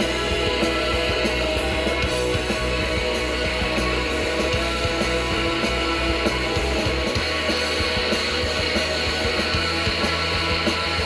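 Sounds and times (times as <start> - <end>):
bass guitar: 0.0 - 11.0
distorted electric guitars: 0.0 - 11.0
steady drum beat: 0.0 - 11.0.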